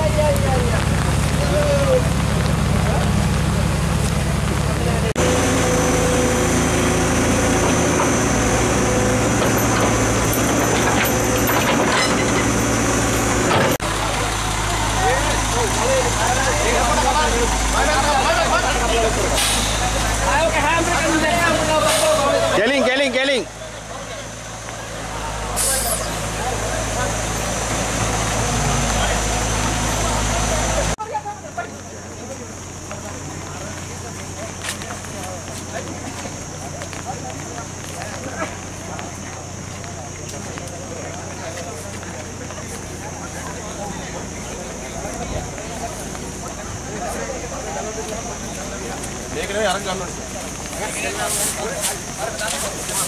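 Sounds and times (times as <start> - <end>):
truck diesel engine under load: 0.0 - 53.0
men calling out: 20.1 - 27.3.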